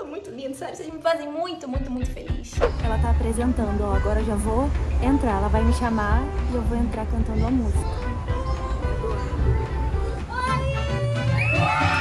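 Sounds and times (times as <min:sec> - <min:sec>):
pop song playing: 0:01.8 - 0:12.0
children shouting and cheering: 0:07.4 - 0:12.0
high-pitched screams: 0:10.3 - 0:12.0.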